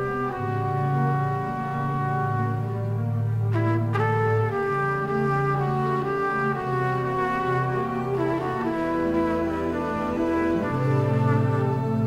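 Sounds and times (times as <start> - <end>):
sustained orchestral chords: 0.0 - 12.0
trumpet melody: 0.0 - 12.0.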